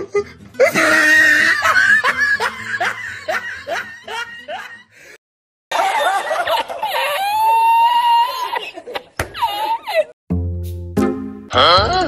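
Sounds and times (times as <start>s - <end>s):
person laughing: 0.0s - 4.9s, 8.4s - 10.2s.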